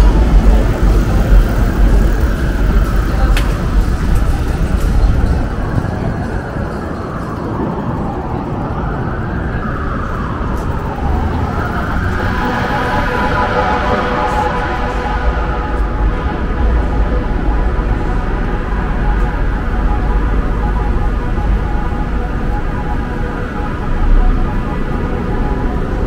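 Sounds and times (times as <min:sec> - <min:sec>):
cars passing with low rumble: 0:00.0 - 0:26.0.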